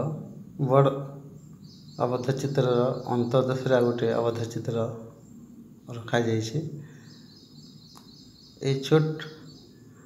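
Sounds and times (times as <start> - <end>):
man talking: 0.0 - 1.1, 2.0 - 5.1, 5.9 - 6.8, 8.6 - 9.4.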